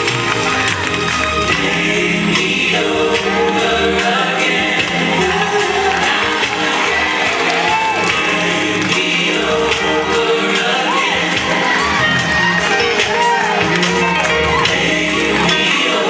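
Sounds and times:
lead singer: 0:00.8 - 0:16.0
choir singing: 0:01.2 - 0:16.0.

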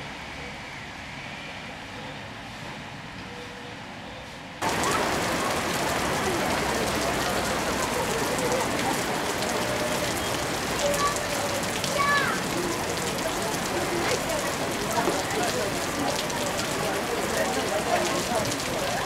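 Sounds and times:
faint voices: 0:04.6 - 0:19.0
rain falling on a wet street: 0:04.6 - 0:19.0.

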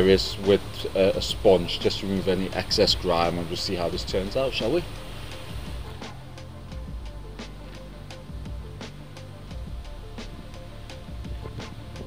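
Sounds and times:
background music with light beat: 0:00.0 - 0:12.0.

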